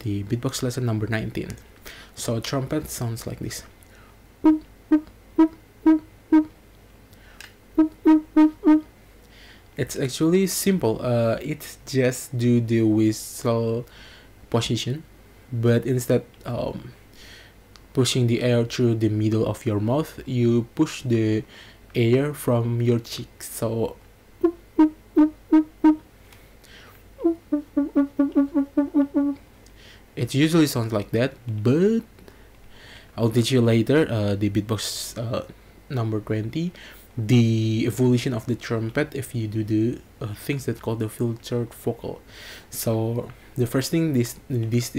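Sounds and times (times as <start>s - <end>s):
beatbox trumpet notes: 4.4s - 6.6s, 7.8s - 8.9s, 24.4s - 26.1s, 27.2s - 29.4s.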